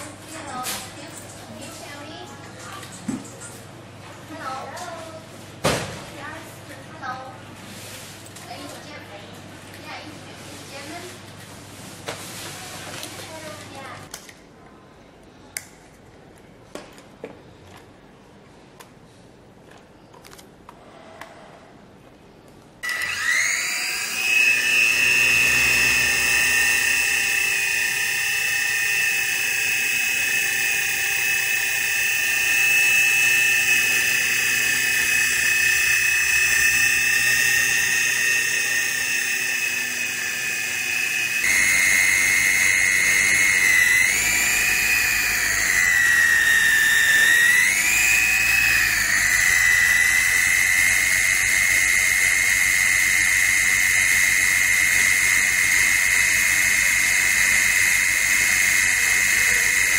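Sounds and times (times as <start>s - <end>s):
toy helicopter motor whine: 22.8s - 59.9s.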